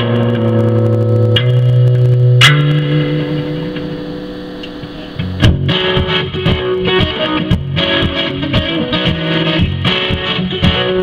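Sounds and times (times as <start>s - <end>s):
strummed guitar chord ringing: 0.0s - 11.0s.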